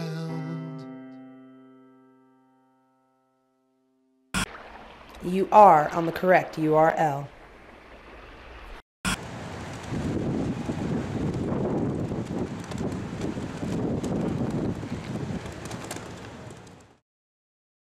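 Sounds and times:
strong wind buffeting microphone: 9.3 - 16.8.

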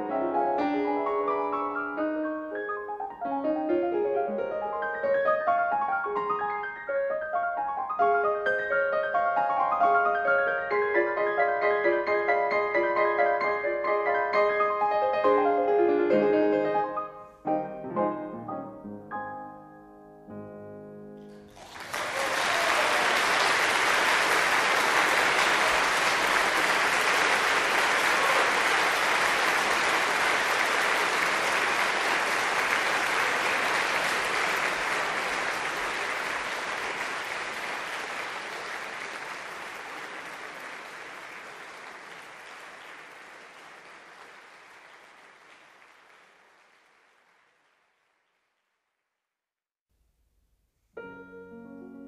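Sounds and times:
solo piano: 0.0 - 21.5, 51.0 - 52.0
audience applauding: 21.5 - 48.3.

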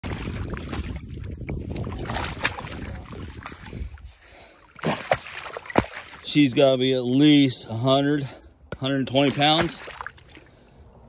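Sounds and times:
wind on microphone: 0.0 - 4.2
shallow water splashing: 0.0 - 6.9, 9.1 - 10.8.

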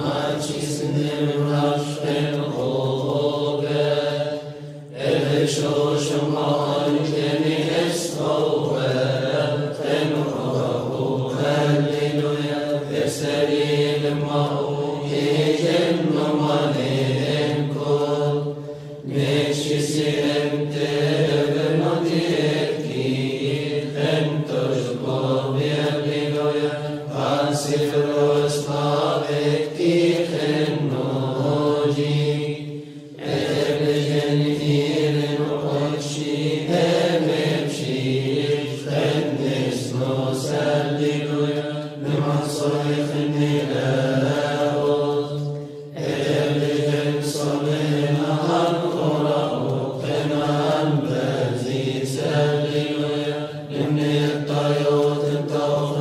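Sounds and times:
monks chanting: 0.0 - 56.0.

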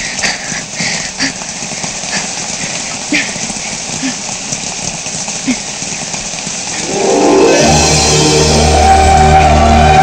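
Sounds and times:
rain hiss: 0.0 - 10.0
low bass note: 6.8 - 10.0
orchestral film score: 6.8 - 10.0.

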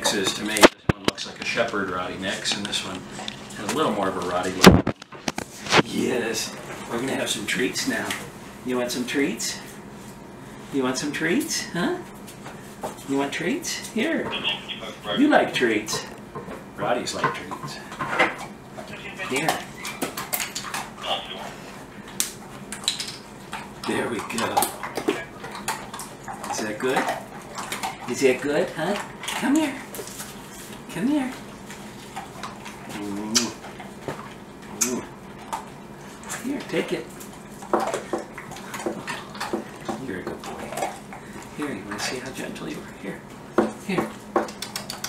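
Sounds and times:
dogs crunching treats: 0.0 - 9.3, 15.3 - 45.0.

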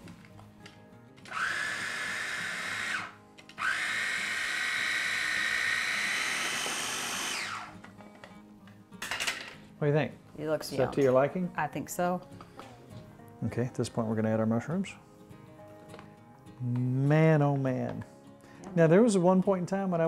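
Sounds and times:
food processor motor whine: 1.3 - 7.8.

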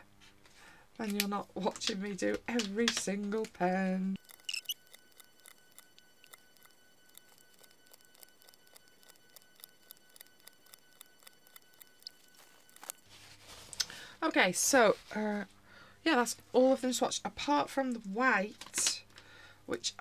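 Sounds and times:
faint high whine: 4.0 - 15.9.

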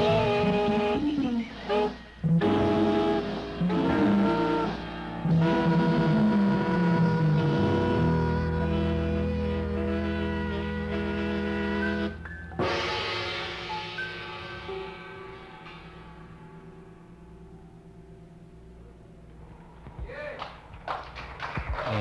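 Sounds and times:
jazz band playing chords: 0.0 - 17.3.

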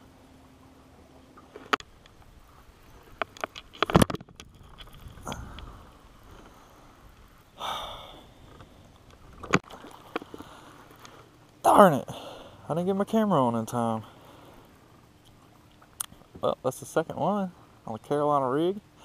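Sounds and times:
breathy exhalations: 5.2 - 7.0, 7.6 - 8.8, 12.1 - 12.7.

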